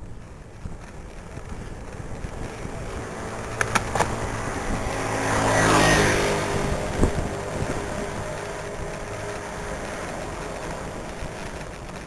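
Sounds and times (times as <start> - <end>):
wind and road noise: 0.0 - 12.0
motor vehicle passing by: 1.4 - 12.0.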